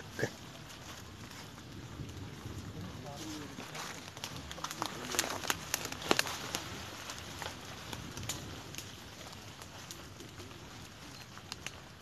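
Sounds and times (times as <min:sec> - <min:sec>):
footsteps crunching dry leaves: 0:00.0 - 0:12.0.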